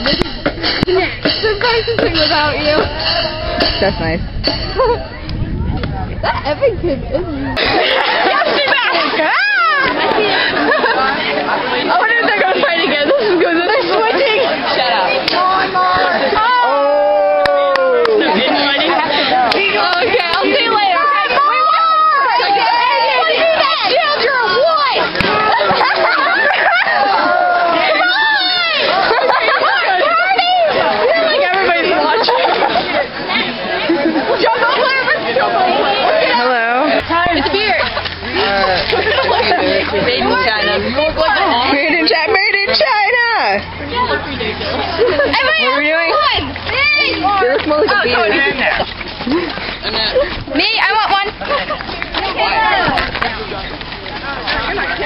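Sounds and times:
young people chattering: 0:00.0 - 0:55.0.

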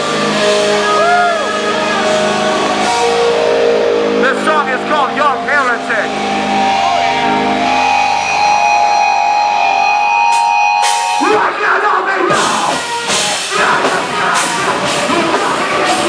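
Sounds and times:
electric guitars sustained notes: 0:00.0 - 0:11.6.

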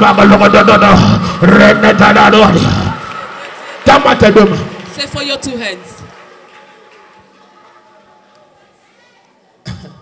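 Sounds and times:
murmur of congregation praying: 0:00.0 - 0:04.9, 0:06.0 - 0:10.0
amplified voice echo: 0:00.0 - 0:06.1.

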